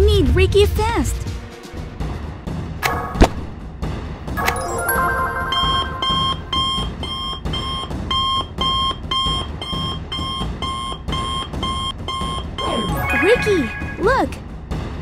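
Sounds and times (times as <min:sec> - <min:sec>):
electronic alarm beeping: 0:04.4 - 0:14.2.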